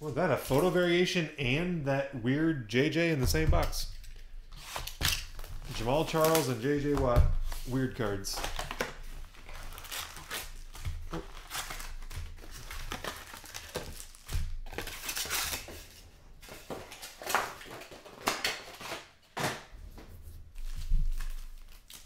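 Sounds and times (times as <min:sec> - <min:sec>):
foil packs crinkling: 0:03.8 - 0:19.7, 0:20.6 - 0:22.0.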